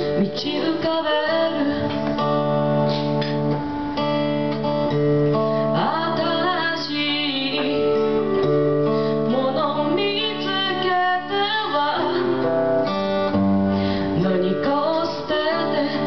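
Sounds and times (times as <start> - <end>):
woman singing: 0.0 - 2.6, 5.6 - 13.0, 14.1 - 16.0
strummed acoustic guitar: 0.0 - 16.0.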